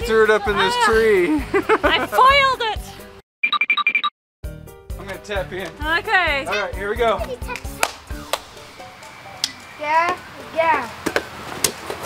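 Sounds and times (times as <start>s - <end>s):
background music: 0.0s - 3.2s, 4.4s - 12.0s
rubber ball slapping ground: 7.5s - 8.5s.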